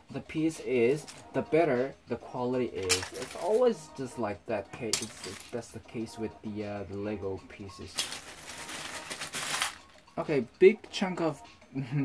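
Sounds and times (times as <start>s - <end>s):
plastic bricks rattling: 2.8s - 3.6s, 5.0s - 5.6s, 8.0s - 10.0s.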